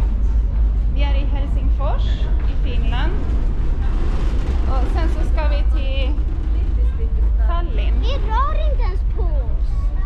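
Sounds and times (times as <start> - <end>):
loud deep rumble: 0.0 - 10.0.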